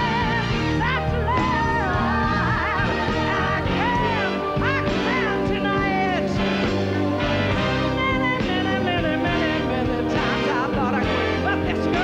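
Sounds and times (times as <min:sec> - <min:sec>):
woman singing: 0:00.0 - 0:06.6, 0:07.7 - 0:12.0
live band accompaniment: 0:00.0 - 0:12.0.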